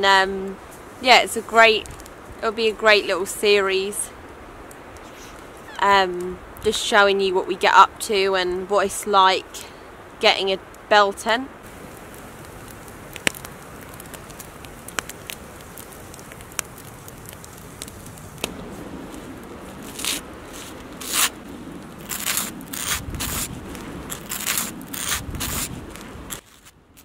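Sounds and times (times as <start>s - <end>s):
bread hissing and crackling in pan: 11.6s - 26.7s.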